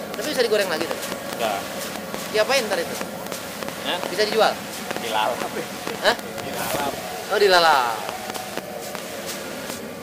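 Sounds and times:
hot oil sizzling: 0.0 - 10.0.

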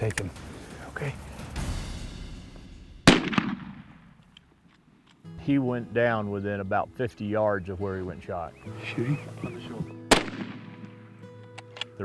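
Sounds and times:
rifle shot: 3.0 - 4.2, 10.1 - 11.1.

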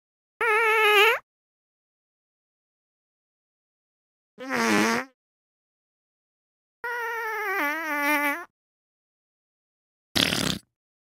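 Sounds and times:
high-pitched squeaky fart: 4.4 - 5.2, 6.9 - 8.5, 10.2 - 10.7.

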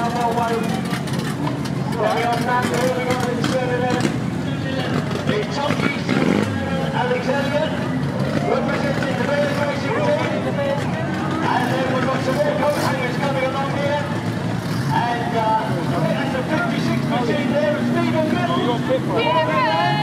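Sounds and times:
race car engines running: 0.0 - 20.0.

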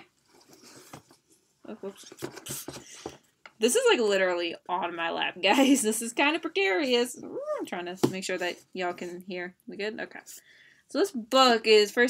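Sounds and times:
book rustling and handling: 0.1 - 3.2
person saying oops: 7.2 - 7.7.

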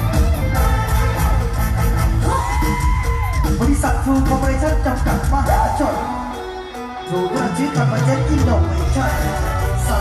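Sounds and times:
live band music over speakers: 0.0 - 10.0.

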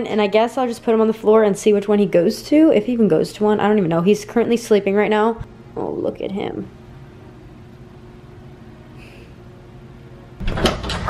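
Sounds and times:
low room hum: 0.0 - 11.0
door clattering open: 10.4 - 11.0.

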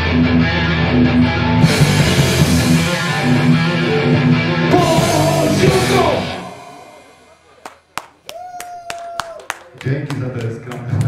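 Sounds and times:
punk rock band playing: 0.0 - 7.4
steady high tone: 4.6 - 7.4
sparse clapping: 7.6 - 11.0.

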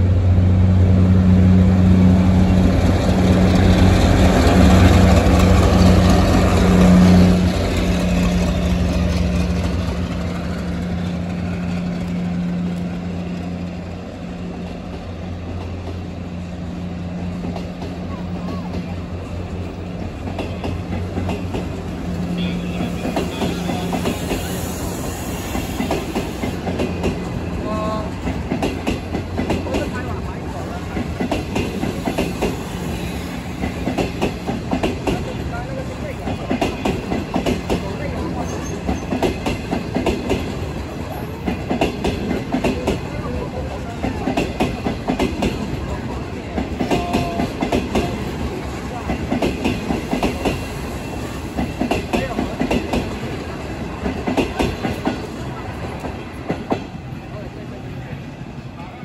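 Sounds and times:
train rumble: 0.0 - 59.0
train wheels clattering over rail joints: 2.3 - 57.0.

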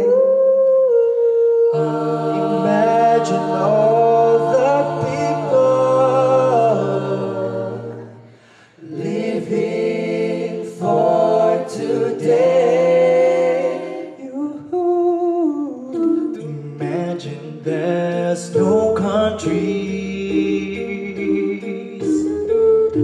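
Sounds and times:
a cappella group singing harmony: 0.0 - 23.0.

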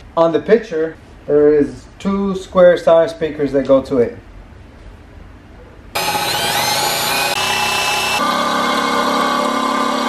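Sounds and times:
cordless drill boring metal: 6.0 - 10.0.

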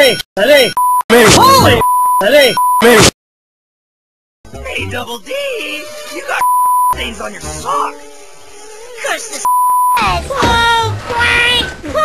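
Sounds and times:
censor beep tone: 0.0 - 3.0, 6.4 - 7.0, 9.5 - 10.0.

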